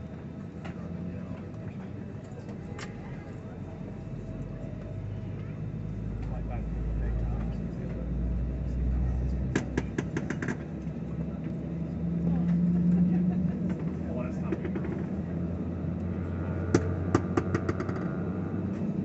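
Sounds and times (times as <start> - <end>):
airliner engine drone: 0.0 - 19.0.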